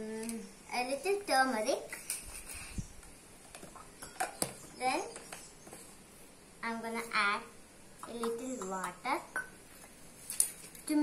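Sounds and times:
child's voice: 0:00.0 - 0:02.0, 0:04.8 - 0:05.2, 0:06.6 - 0:09.4.

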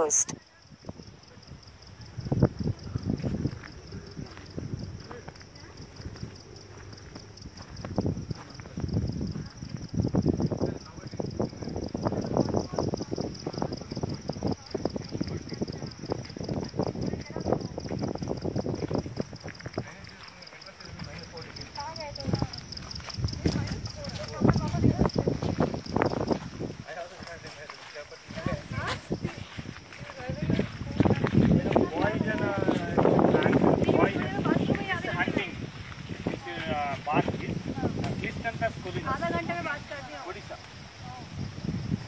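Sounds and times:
indistinct voices: 0:00.0 - 0:00.4
insects chirring: 0:00.0 - 0:42.0
footsteps on stony dirt path: 0:03.1 - 0:09.8, 0:17.8 - 0:37.4.

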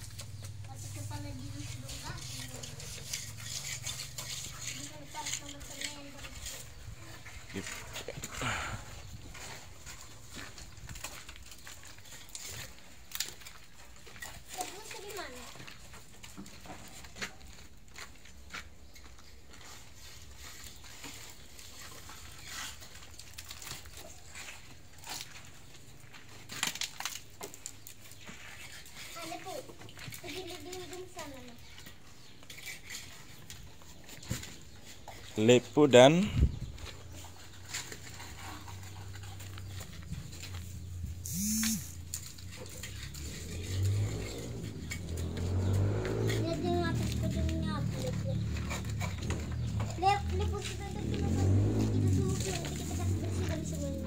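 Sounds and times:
trowel scraping and tapping: 0:01.4 - 0:08.3.

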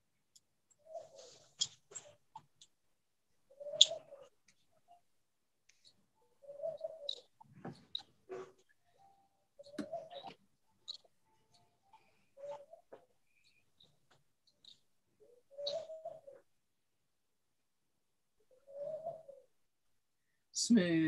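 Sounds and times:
dove cooing: 0:00.8 - 0:02.2, 0:03.5 - 0:04.4, 0:06.2 - 0:11.1, 0:11.9 - 0:13.6, 0:14.6 - 0:16.5, 0:18.5 - 0:19.5.

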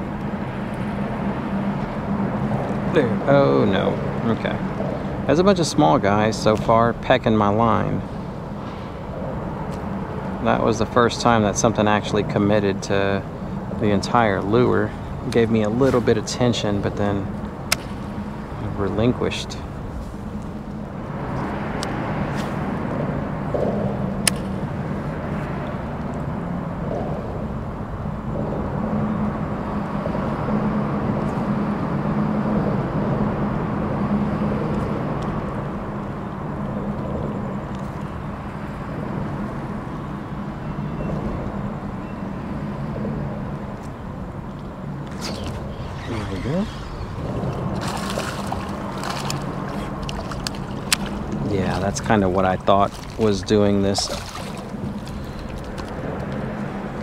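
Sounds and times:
low mechanical hum: 0:00.0 - 0:57.0
water splashing: 0:45.0 - 0:57.0.

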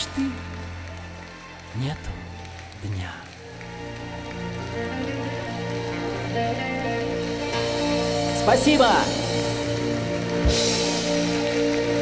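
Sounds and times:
audience clapping: 0:00.0 - 0:12.0
live band playing chords: 0:04.8 - 0:12.0.

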